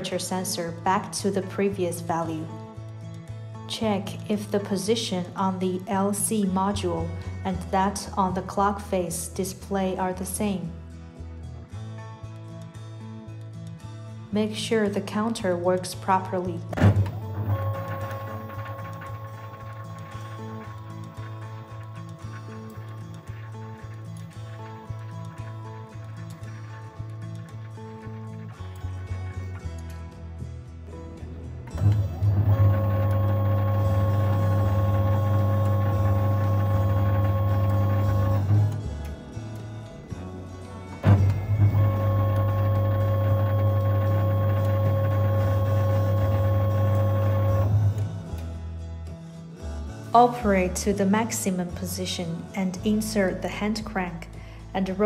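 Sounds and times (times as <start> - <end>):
background music: 0.0 - 55.0
electric motor humming: 16.8 - 25.6, 31.8 - 39.0, 41.0 - 48.0.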